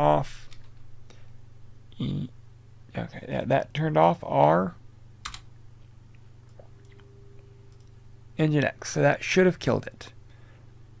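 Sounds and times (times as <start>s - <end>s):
faint low hum: 0.0s - 11.0s
computer mouse clicks: 5.2s - 5.5s.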